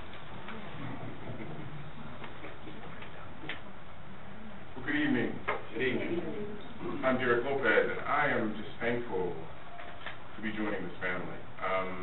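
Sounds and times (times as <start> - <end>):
low murmur: 0.0 - 9.6.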